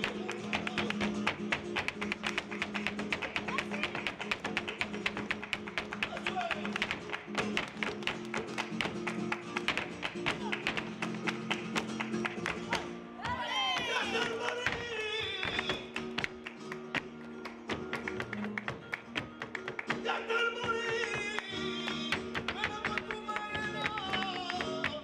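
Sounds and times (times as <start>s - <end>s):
sharp handclaps: 0.0s - 12.9s, 13.8s - 25.0s
acoustic guitar playing: 0.0s - 25.0s
heels striking wooden stage: 0.0s - 25.0s.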